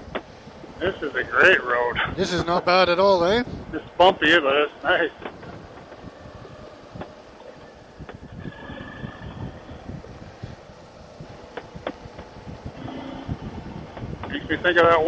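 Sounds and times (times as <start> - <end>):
motorcycle engine rumble: 0.0 - 15.0
wind on microphone: 0.0 - 15.0.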